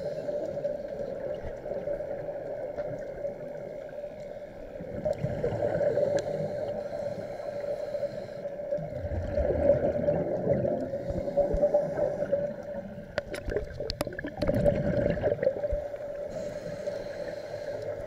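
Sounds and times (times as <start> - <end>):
underwater bubble gurgle: 0.0 - 3.9, 4.7 - 6.8, 8.7 - 16.5.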